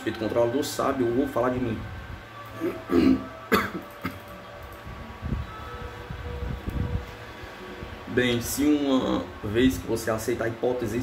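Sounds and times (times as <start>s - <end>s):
low rumbling noise: 1.0s - 10.2s
man clearing his throat: 2.8s - 4.2s.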